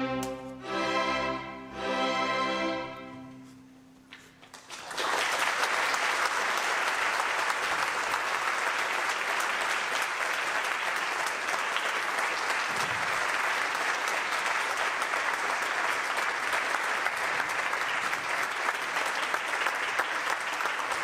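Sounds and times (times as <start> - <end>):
audience applauding: 4.4 - 21.0.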